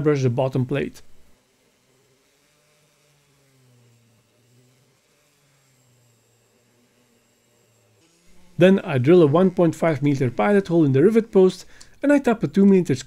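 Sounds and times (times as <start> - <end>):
rotary tool wire brush hum: 0.0 - 13.0.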